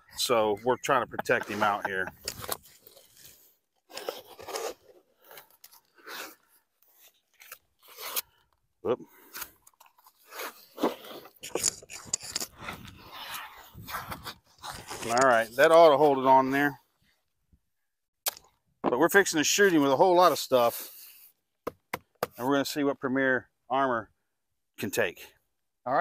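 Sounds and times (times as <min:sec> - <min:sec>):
tape tearing and crinkling: 0:02.2 - 0:08.6.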